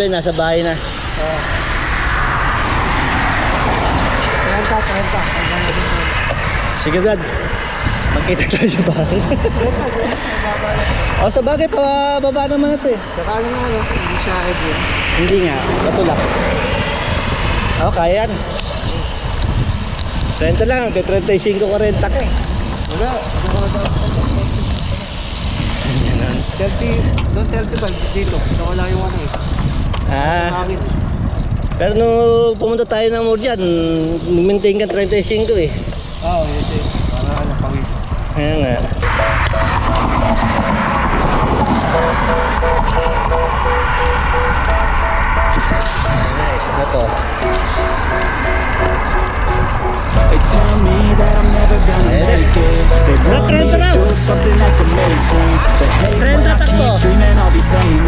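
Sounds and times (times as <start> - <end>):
wind rushing over microphone: 0.0 - 33.4, 35.0 - 50.4
person singing: 39.0 - 46.2, 47.4 - 58.0.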